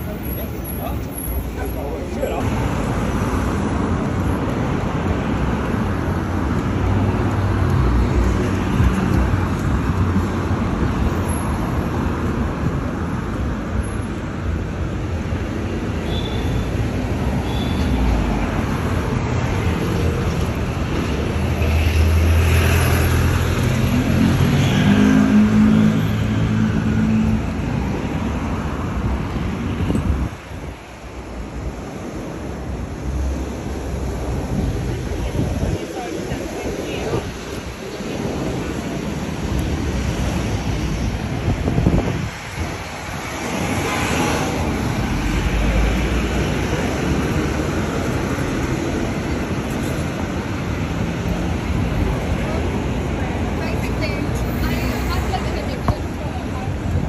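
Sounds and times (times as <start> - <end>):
road traffic passing: 0.0 - 57.0.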